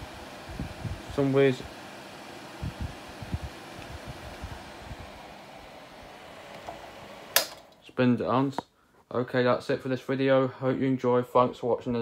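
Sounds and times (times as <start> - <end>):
fan spinning down: 0.0 - 8.4
sharp click: 6.6 - 7.8.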